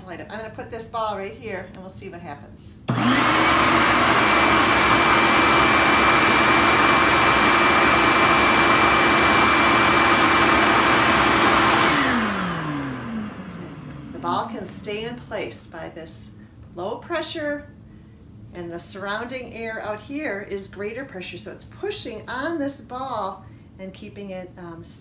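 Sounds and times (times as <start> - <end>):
vacuum motor whining: 2.9 - 14.8.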